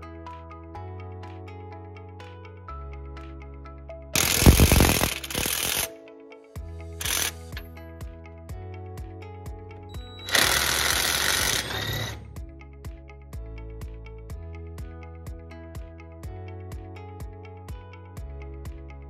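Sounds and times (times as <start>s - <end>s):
background music: 0.0s - 19.0s
power wrench rattling: 4.2s - 5.9s, 7.0s - 7.6s, 10.3s - 12.3s.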